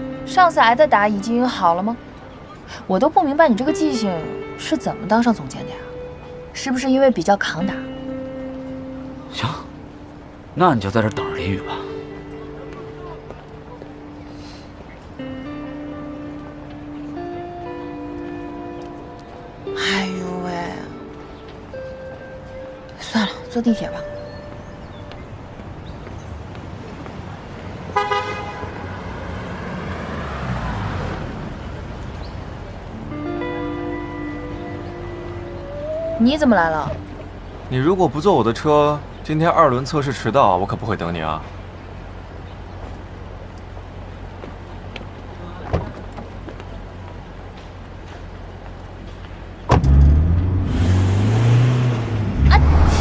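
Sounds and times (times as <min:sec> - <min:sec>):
car horn toot: 0:28.0 - 0:29.0
car door slamming: 0:49.7 - 0:50.2
car engine revving: 0:49.7 - 0:53.0.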